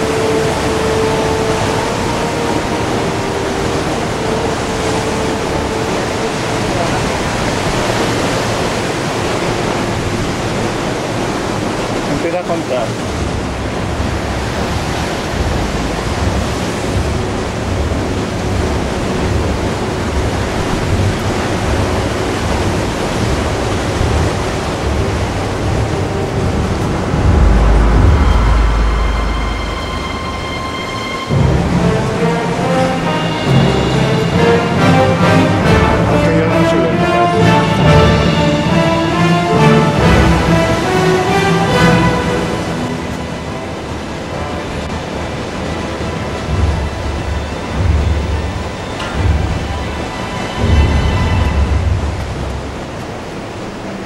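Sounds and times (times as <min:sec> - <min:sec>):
wind rushing over microphone: 0:00.0 - 0:32.4
low wind buffeting gusts: 0:00.0 - 0:54.0.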